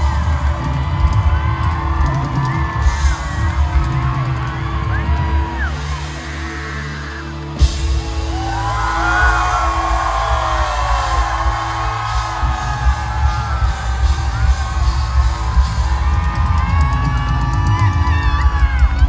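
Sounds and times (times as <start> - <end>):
crowd cheering and screaming: 0.0 - 19.0.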